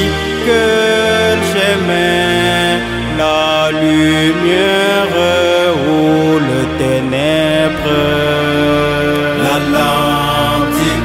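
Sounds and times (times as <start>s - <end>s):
person singing long notes: 0.0s - 11.0s
steady musical backing: 0.0s - 11.0s.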